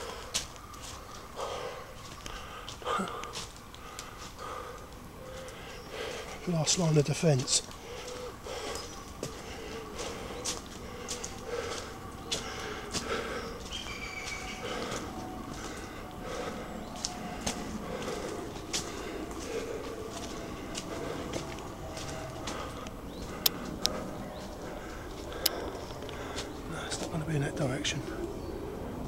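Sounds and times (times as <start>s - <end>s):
twigs cracking underfoot: 0.0s - 27.2s
footsteps on dry leaves: 0.0s - 27.7s.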